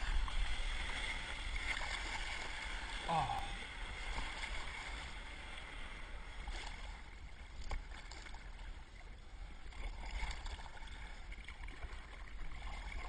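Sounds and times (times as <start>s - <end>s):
wind rumbling on microphone: 0.0s - 8.6s
sea water rushing and splashing: 0.0s - 13.0s.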